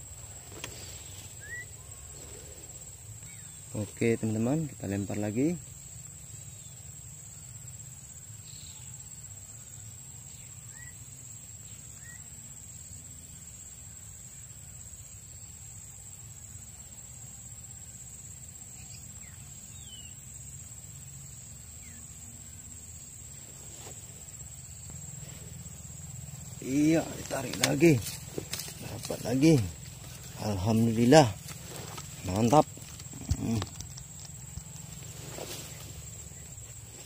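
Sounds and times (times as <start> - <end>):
insect chorus drone: 0.0 - 37.0
short insect chirps: 0.0 - 37.0.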